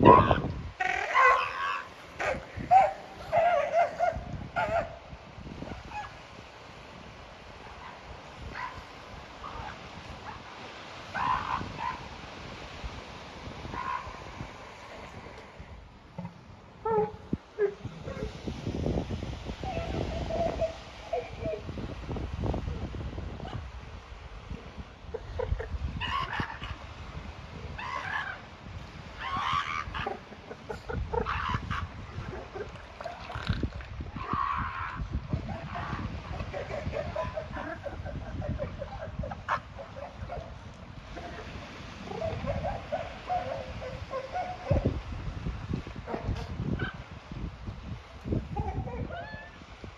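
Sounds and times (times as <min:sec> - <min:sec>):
seal high squealing cries: 0:00.0 - 0:04.8, 0:11.1 - 0:12.0, 0:26.0 - 0:26.8, 0:27.8 - 0:28.4, 0:29.2 - 0:30.2, 0:31.2 - 0:31.9
seal pup calling: 0:00.0 - 0:04.9, 0:13.7 - 0:14.2, 0:16.8 - 0:18.4, 0:19.6 - 0:21.7, 0:25.1 - 0:26.9, 0:27.7 - 0:28.4, 0:29.1 - 0:45.0.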